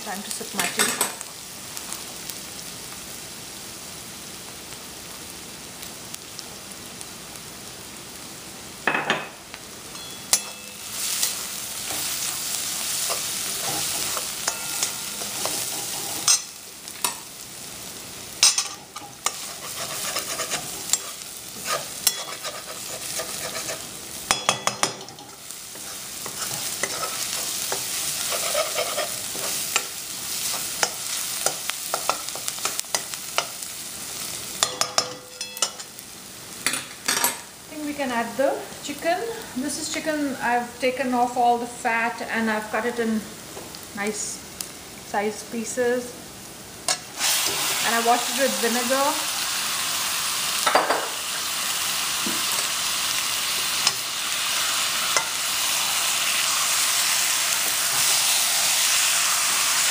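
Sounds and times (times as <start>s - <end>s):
onions sizzling in oil: 0.0s - 59.9s
metal spatula scraping a pan: 10.0s - 17.2s, 18.4s - 33.6s.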